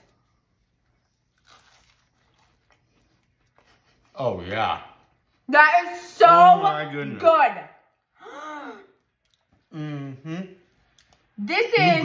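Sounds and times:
people biting and chewing donuts: 0:00.0 - 0:04.3, 0:08.7 - 0:11.4.

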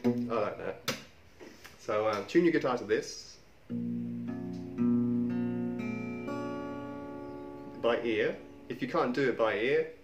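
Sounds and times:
acoustic guitar strings plucked: 0:03.7 - 0:08.8.

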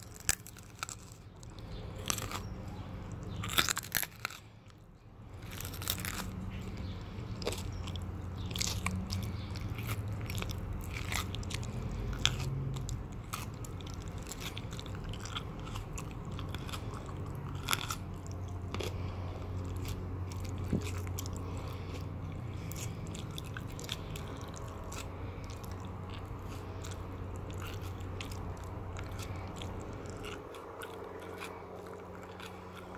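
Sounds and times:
mouth chewing and biting: 0:00.0 - 0:32.9
steady low hum: 0:00.0 - 0:32.9.

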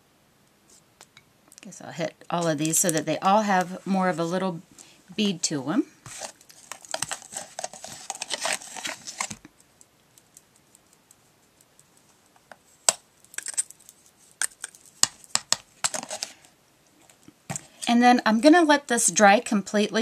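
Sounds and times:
glitter rustling in plastic tub: 0:06.0 - 0:09.4, 0:13.3 - 0:16.5.

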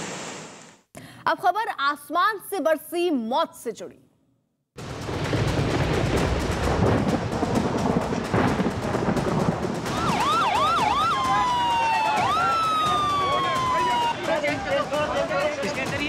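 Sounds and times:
rough loud noise: 0:00.0 - 0:00.8
ambulance siren: 0:09.9 - 0:15.0.

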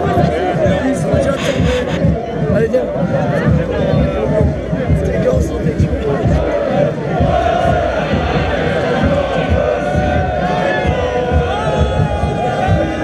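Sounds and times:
band music: 0:00.0 - 0:03.6
crowd singing and chanting: 0:00.0 - 0:13.0.

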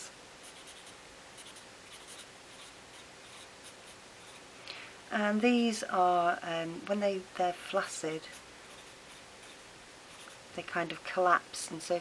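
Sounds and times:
marker pen writing on paper: 0:00.4 - 0:04.4.

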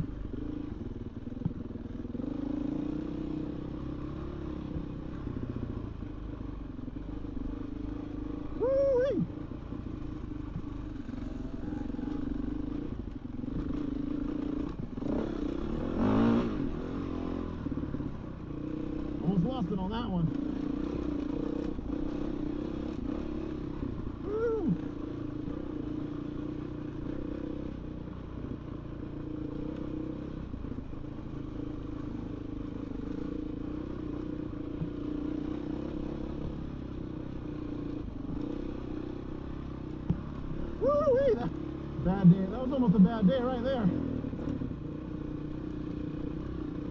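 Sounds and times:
dirt bike engine running: 0:00.0 - 0:46.9.

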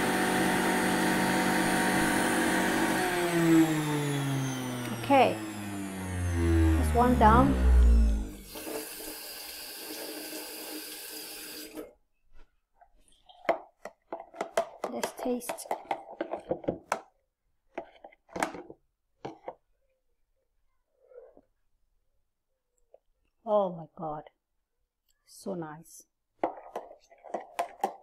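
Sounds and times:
electric juicer whirring: 0:00.0 - 0:12.0.

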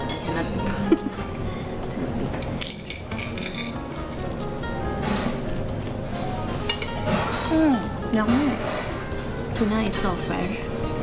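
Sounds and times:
background music: 0:00.0 - 0:11.0
cutlery clinking on a plate: 0:06.2 - 0:07.6.

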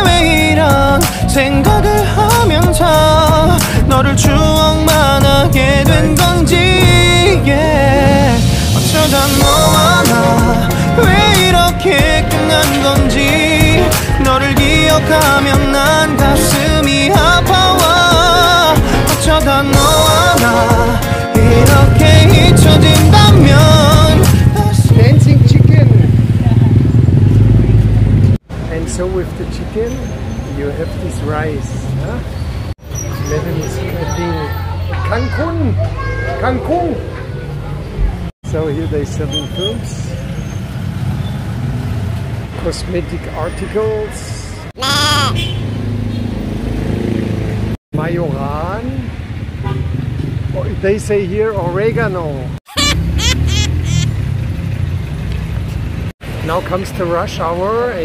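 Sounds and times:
street noise: 0:00.0 - 0:58.0
short high-pitched calls: 0:44.8 - 0:45.4, 0:52.7 - 0:54.2.

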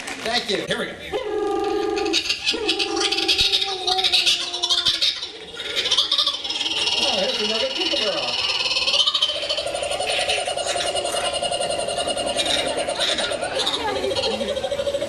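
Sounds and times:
parrot pulsing croak-like call: 0:01.3 - 0:15.0
parrot squawking: 0:01.5 - 0:15.0.

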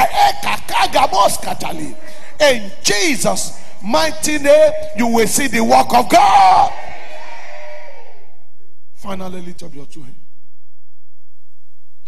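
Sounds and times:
echo of man shouting in hall: 0:04.0 - 0:08.3.

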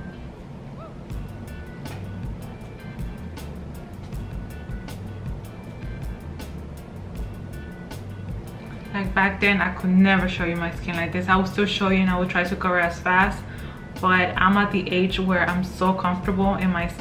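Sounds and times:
background music with steady beat: 0:00.0 - 0:17.0.

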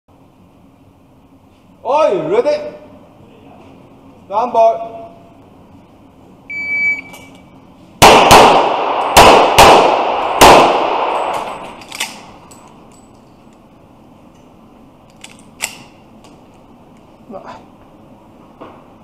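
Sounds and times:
shot timer beep: 0:06.5 - 0:07.3
gunshots with reverberant tails: 0:08.0 - 0:12.3.

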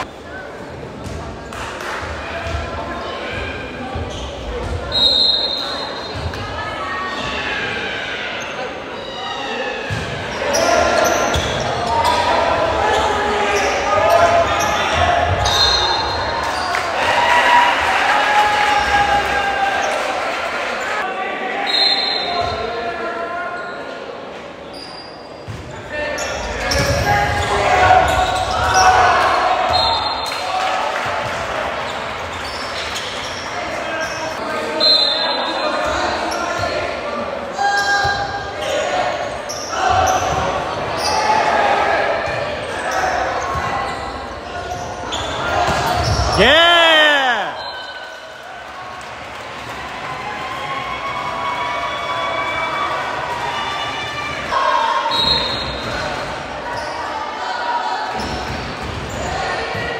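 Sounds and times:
people calling out and chattering: 0:00.0 - 0:48.8.

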